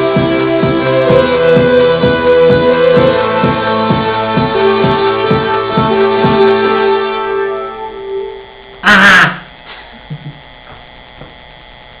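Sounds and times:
electronic keyboard chord: 0:00.0 - 0:08.8.

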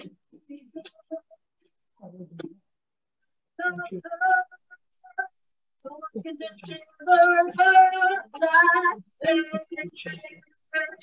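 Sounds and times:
woman singing worship song: 0:03.6 - 0:11.0.

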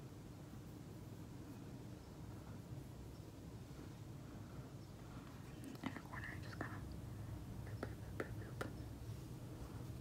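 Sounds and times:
faint whisper: 0:03.8 - 0:10.0.

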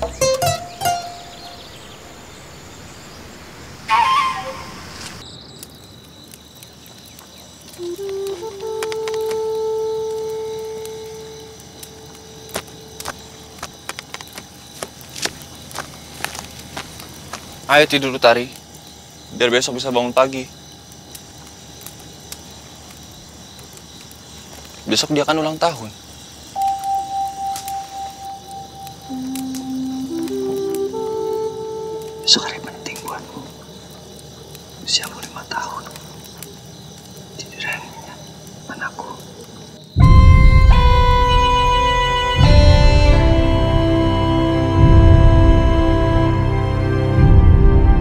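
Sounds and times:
crickets chirring: 0:00.0 - 0:48.0
flute-like wind instrument: 0:03.8 - 0:05.2, 0:07.8 - 0:11.6, 0:26.6 - 0:32.8, 0:40.0 - 0:48.0
film soundtrack music: 0:07.8 - 0:13.2, 0:26.6 - 0:33.6, 0:40.0 - 0:48.0.

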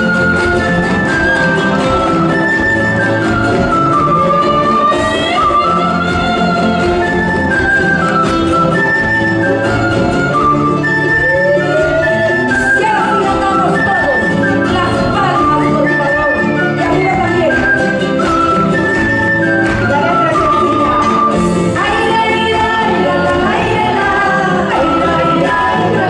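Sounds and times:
acoustic guitars: 0:00.0 - 0:26.0
percussion: 0:00.0 - 0:26.0.

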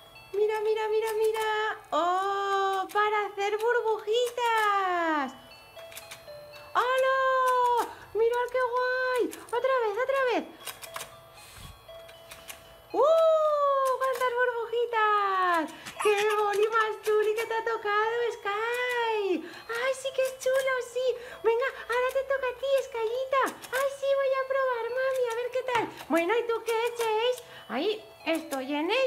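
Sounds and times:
high-pitched wordless voice sliding: 0:16.0 - 0:17.6.

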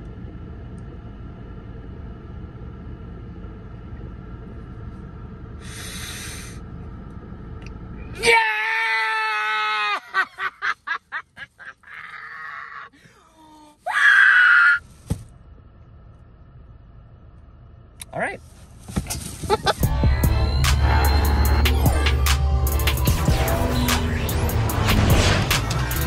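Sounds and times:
high-pitched scream: 0:13.8 - 0:14.8
car cabin rumble: 0:14.8 - 0:26.0.

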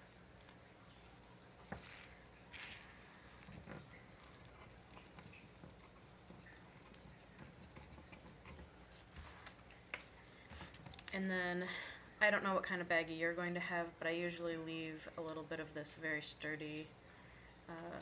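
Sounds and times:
plastic bag crinkling: 0:00.5 - 0:05.8
scissors snipping plastic bag: 0:01.8 - 0:03.5.

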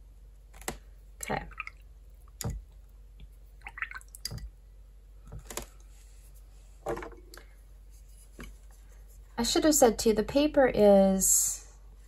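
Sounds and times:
water drips and swishes: 0:01.2 - 0:04.5.

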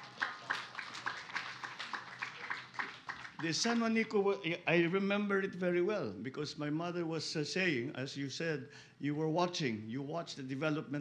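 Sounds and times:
audience clapping: 0:00.0 - 0:04.0.

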